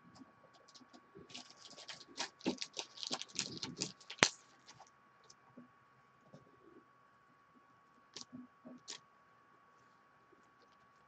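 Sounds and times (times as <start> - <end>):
cards clicking and rustling: 1.3 - 4.8.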